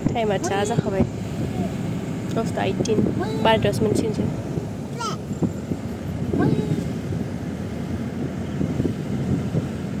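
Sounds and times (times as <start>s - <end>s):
vehicle rumble from inside cabin: 0.0s - 10.0s.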